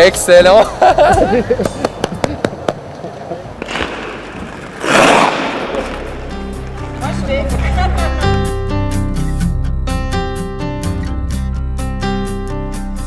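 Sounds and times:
background music: 0.0 - 2.0, 4.8 - 13.0
people laughing: 0.6 - 3.6, 7.6 - 8.5.

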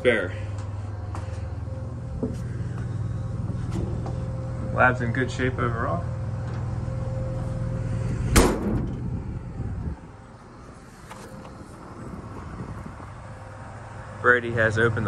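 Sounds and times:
steady low hum: 0.0 - 15.0
sharp bang with ring: 8.3 - 8.9.

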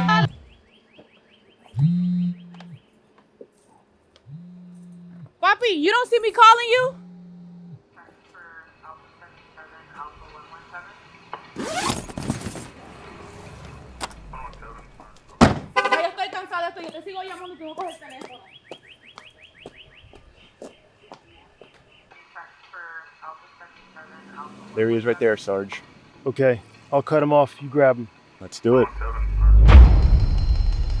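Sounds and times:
voices: 5.4 - 7.0, 7.9 - 11.9, 13.6 - 18.6, 20.5 - 29.6
sharp thunk: 15.4 - 15.8, 29.5 - 30.9
loud rushing burst: 28.9 - 31.0.

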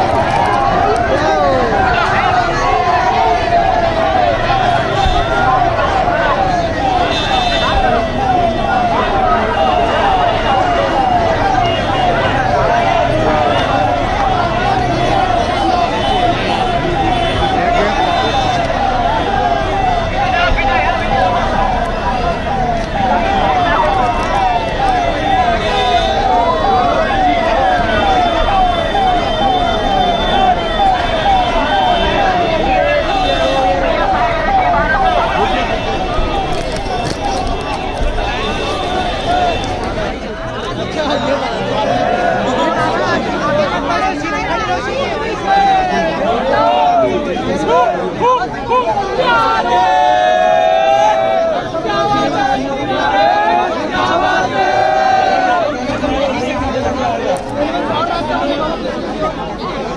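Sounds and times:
electronic siren: 0.0 - 41.2
crowd shouting and chatter: 0.0 - 59.9.

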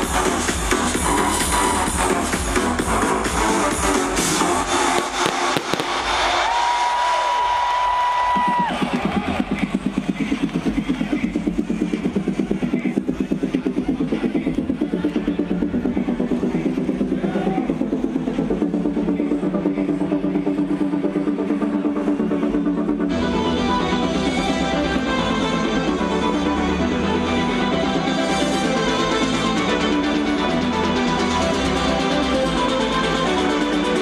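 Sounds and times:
electronic dance music: 0.0 - 7.5, 8.3 - 34.0.

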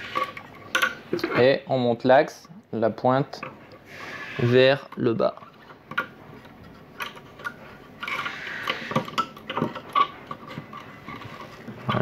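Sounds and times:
metal parts rubbing scrape: 0.0 - 1.5, 3.8 - 12.0
small metal parts clicking: 4.8 - 12.0.

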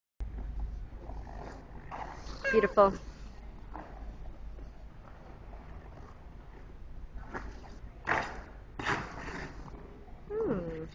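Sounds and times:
skate blades scraping ice: 7.2 - 9.8.

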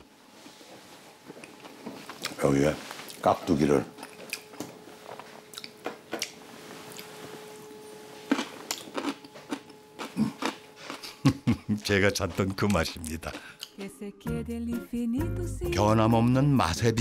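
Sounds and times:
man chewing crunchy food: 1.3 - 2.4, 5.5 - 7.2, 8.2 - 13.8
man laughing: 11.0 - 12.1.

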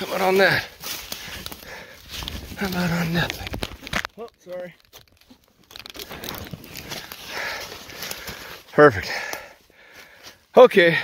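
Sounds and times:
rustling through dry leaves: 0.0 - 9.3.

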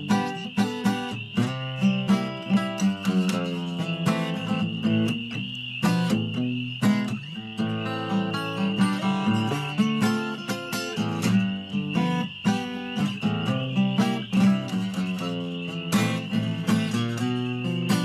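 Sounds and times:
acoustic guitar strumming and picking: 0.0 - 18.0.

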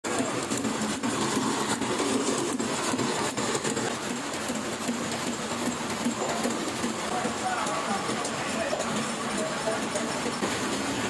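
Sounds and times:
printing press mechanical clatter: 0.0 - 11.0.

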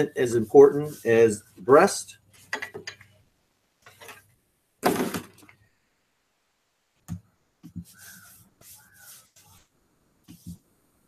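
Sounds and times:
hands rubbing skin in metal pan: 7.7 - 9.7.

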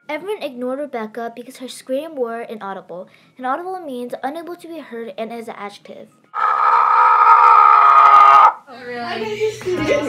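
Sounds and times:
girl screaming: 6.4 - 8.6.

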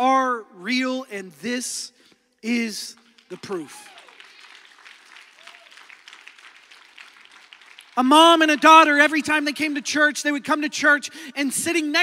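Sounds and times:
congregation applauding: 2.9 - 9.2.

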